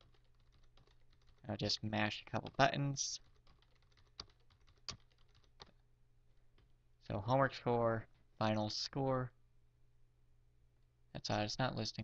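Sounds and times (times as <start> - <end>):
computer keyboard keystrokes: 0.0 - 1.4, 2.4 - 5.8.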